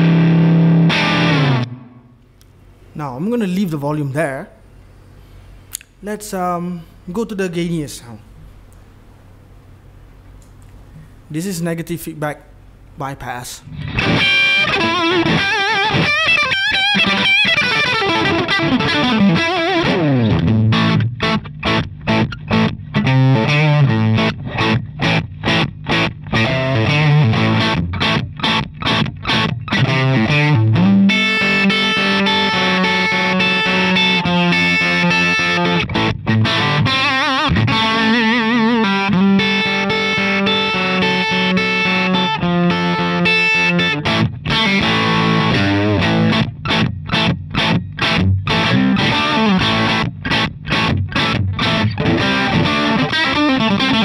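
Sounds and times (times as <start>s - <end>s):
electric guitar notes with vibrato: 0.0s - 2.2s, 13.7s - 54.0s
distorted electric guitar chords: 0.0s - 2.4s, 13.7s - 54.0s.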